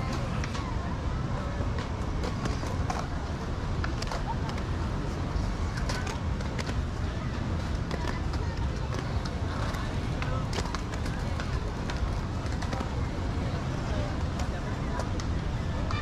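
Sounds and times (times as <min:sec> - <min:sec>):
skateboards clacking on ramps: 0:00.0 - 0:16.0
steady rumble: 0:00.0 - 0:16.0.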